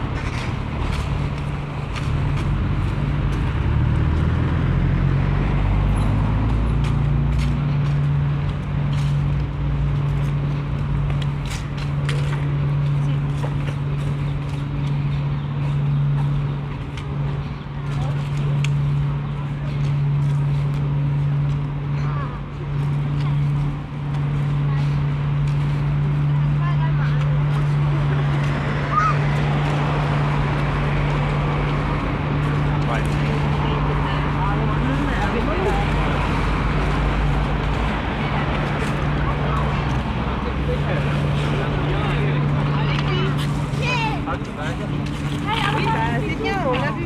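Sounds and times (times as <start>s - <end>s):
low hum of traffic: 0.0s - 47.0s
passers-by talking: 0.0s - 47.0s.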